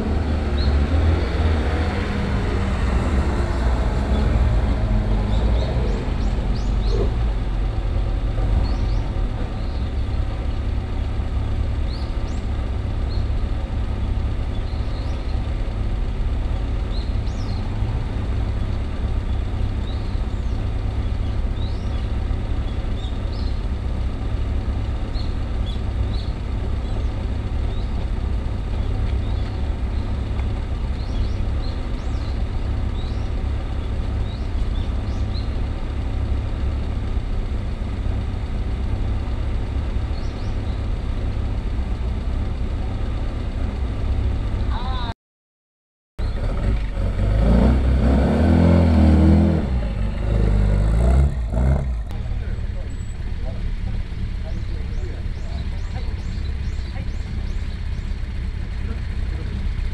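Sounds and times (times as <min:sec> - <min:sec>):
car engine revving: 0:00.0 - 0:44.8, 0:46.2 - 0:59.9
steady low rumble: 0:49.3 - 0:59.9.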